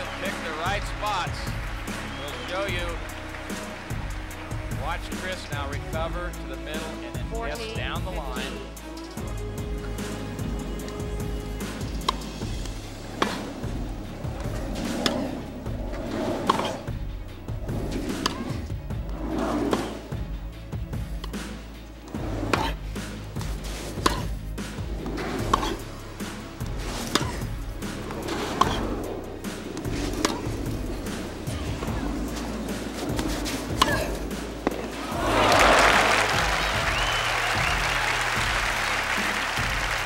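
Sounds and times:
background music: 0:00.0 - 0:40.0
tennis ball struck by rackets: 0:11.7 - 0:12.4, 0:18.1 - 0:18.6, 0:23.4 - 0:24.4, 0:26.7 - 0:28.8, 0:29.8 - 0:31.3, 0:33.0 - 0:35.2.

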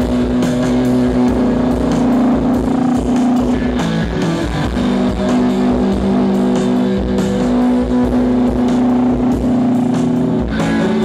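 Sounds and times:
distorted electric guitar notes: 0:00.0 - 0:11.0
drum and cymbal hits: 0:00.0 - 0:11.0
low drone: 0:00.0 - 0:11.0
rock band playing live: 0:00.0 - 0:11.0.

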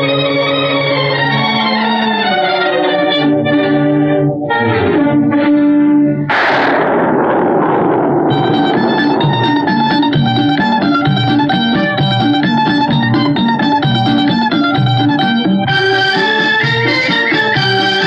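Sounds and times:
orchestral chords sliding downward: 0:01.0 - 0:18.0
loud crash: 0:06.3 - 0:13.3
plucked-string accompaniment: 0:08.3 - 0:18.0.

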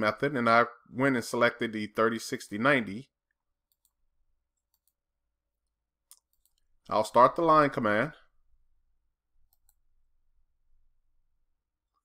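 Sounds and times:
person speaking: 0:00.0 - 0:03.2, 0:06.8 - 0:08.3
computer mouse clicks: 0:03.7 - 0:04.0, 0:04.6 - 0:05.0, 0:06.1 - 0:06.7, 0:09.4 - 0:09.9.

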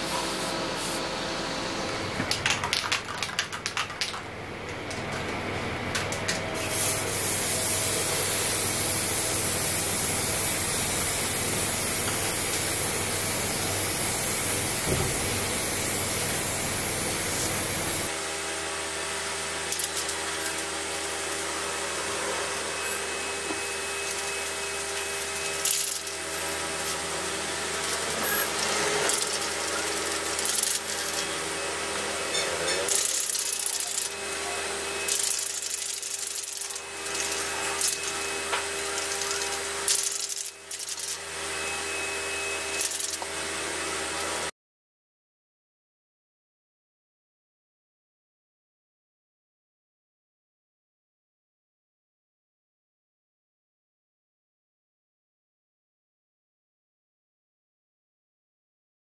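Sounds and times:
spray paint hissing: 0:00.1 - 0:01.0, 0:06.6 - 0:08.6, 0:24.0 - 0:27.0, 0:27.8 - 0:31.4, 0:32.9 - 0:34.2, 0:35.1 - 0:38.3, 0:38.9 - 0:41.2, 0:42.7 - 0:43.2.

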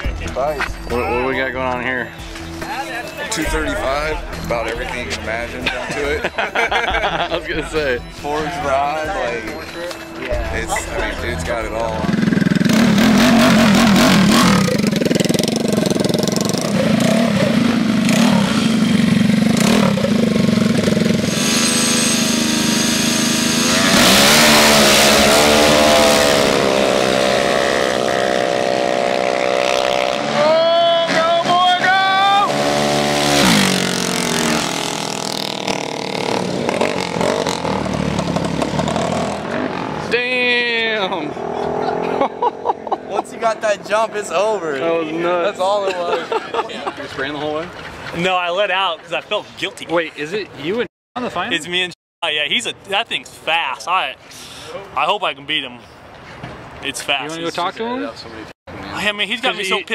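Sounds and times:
onlookers' voices: 0:00.0 - 0:21.1, 0:40.0 - 0:51.8
small engines revving and accelerating: 0:11.4 - 0:44.4.

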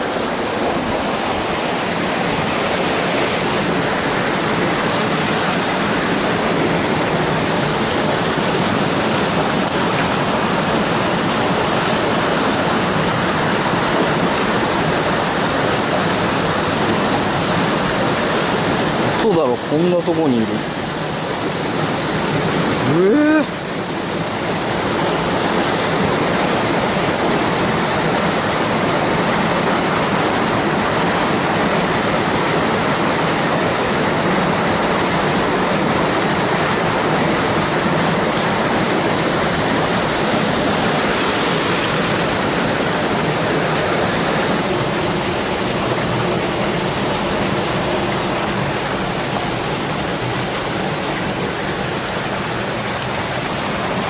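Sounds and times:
stream water rushing over rocks: 0:00.0 - 0:54.0.

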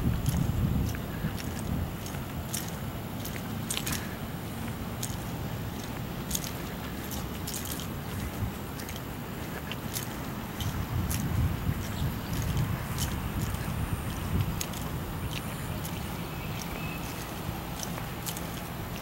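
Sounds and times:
footsteps on pavement and grass: 0:00.0 - 0:19.0
steady outdoor hiss: 0:00.0 - 0:19.0.

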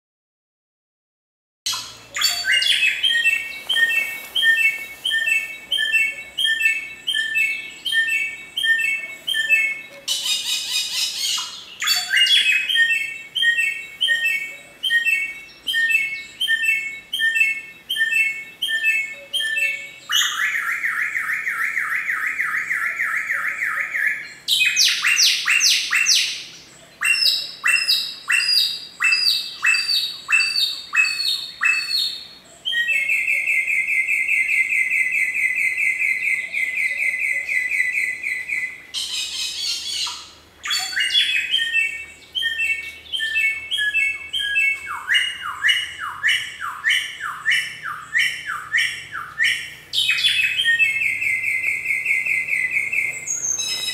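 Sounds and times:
bird singing whistled phrases and trills: 0:01.7 - 0:53.9.

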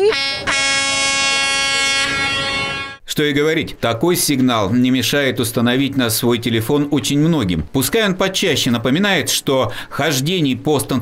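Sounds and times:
steady horn-like warning tone: 0:00.0 - 0:03.0.

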